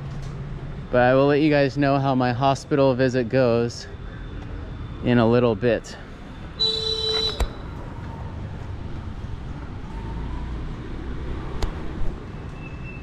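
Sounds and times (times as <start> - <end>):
road traffic hum: 0.0 - 13.0
short pitched beep: 6.6 - 7.6
sharp clicks: 7.1 - 7.6.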